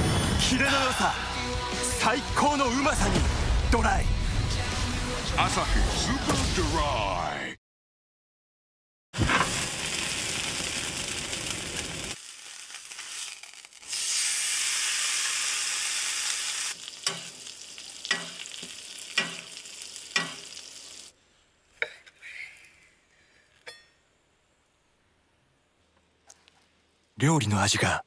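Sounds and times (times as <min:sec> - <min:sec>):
steak sizzling in a skillet: 0:09.5 - 0:21.1.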